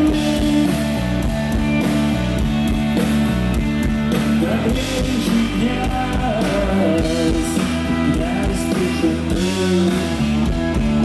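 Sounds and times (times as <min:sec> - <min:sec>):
electric guitars: 0:00.0 - 0:11.0
live rock band playing: 0:00.0 - 0:11.0.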